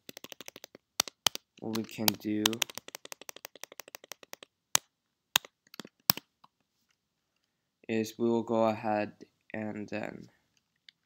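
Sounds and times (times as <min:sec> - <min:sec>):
typing on computer keyboard: 0:00.0 - 0:04.5.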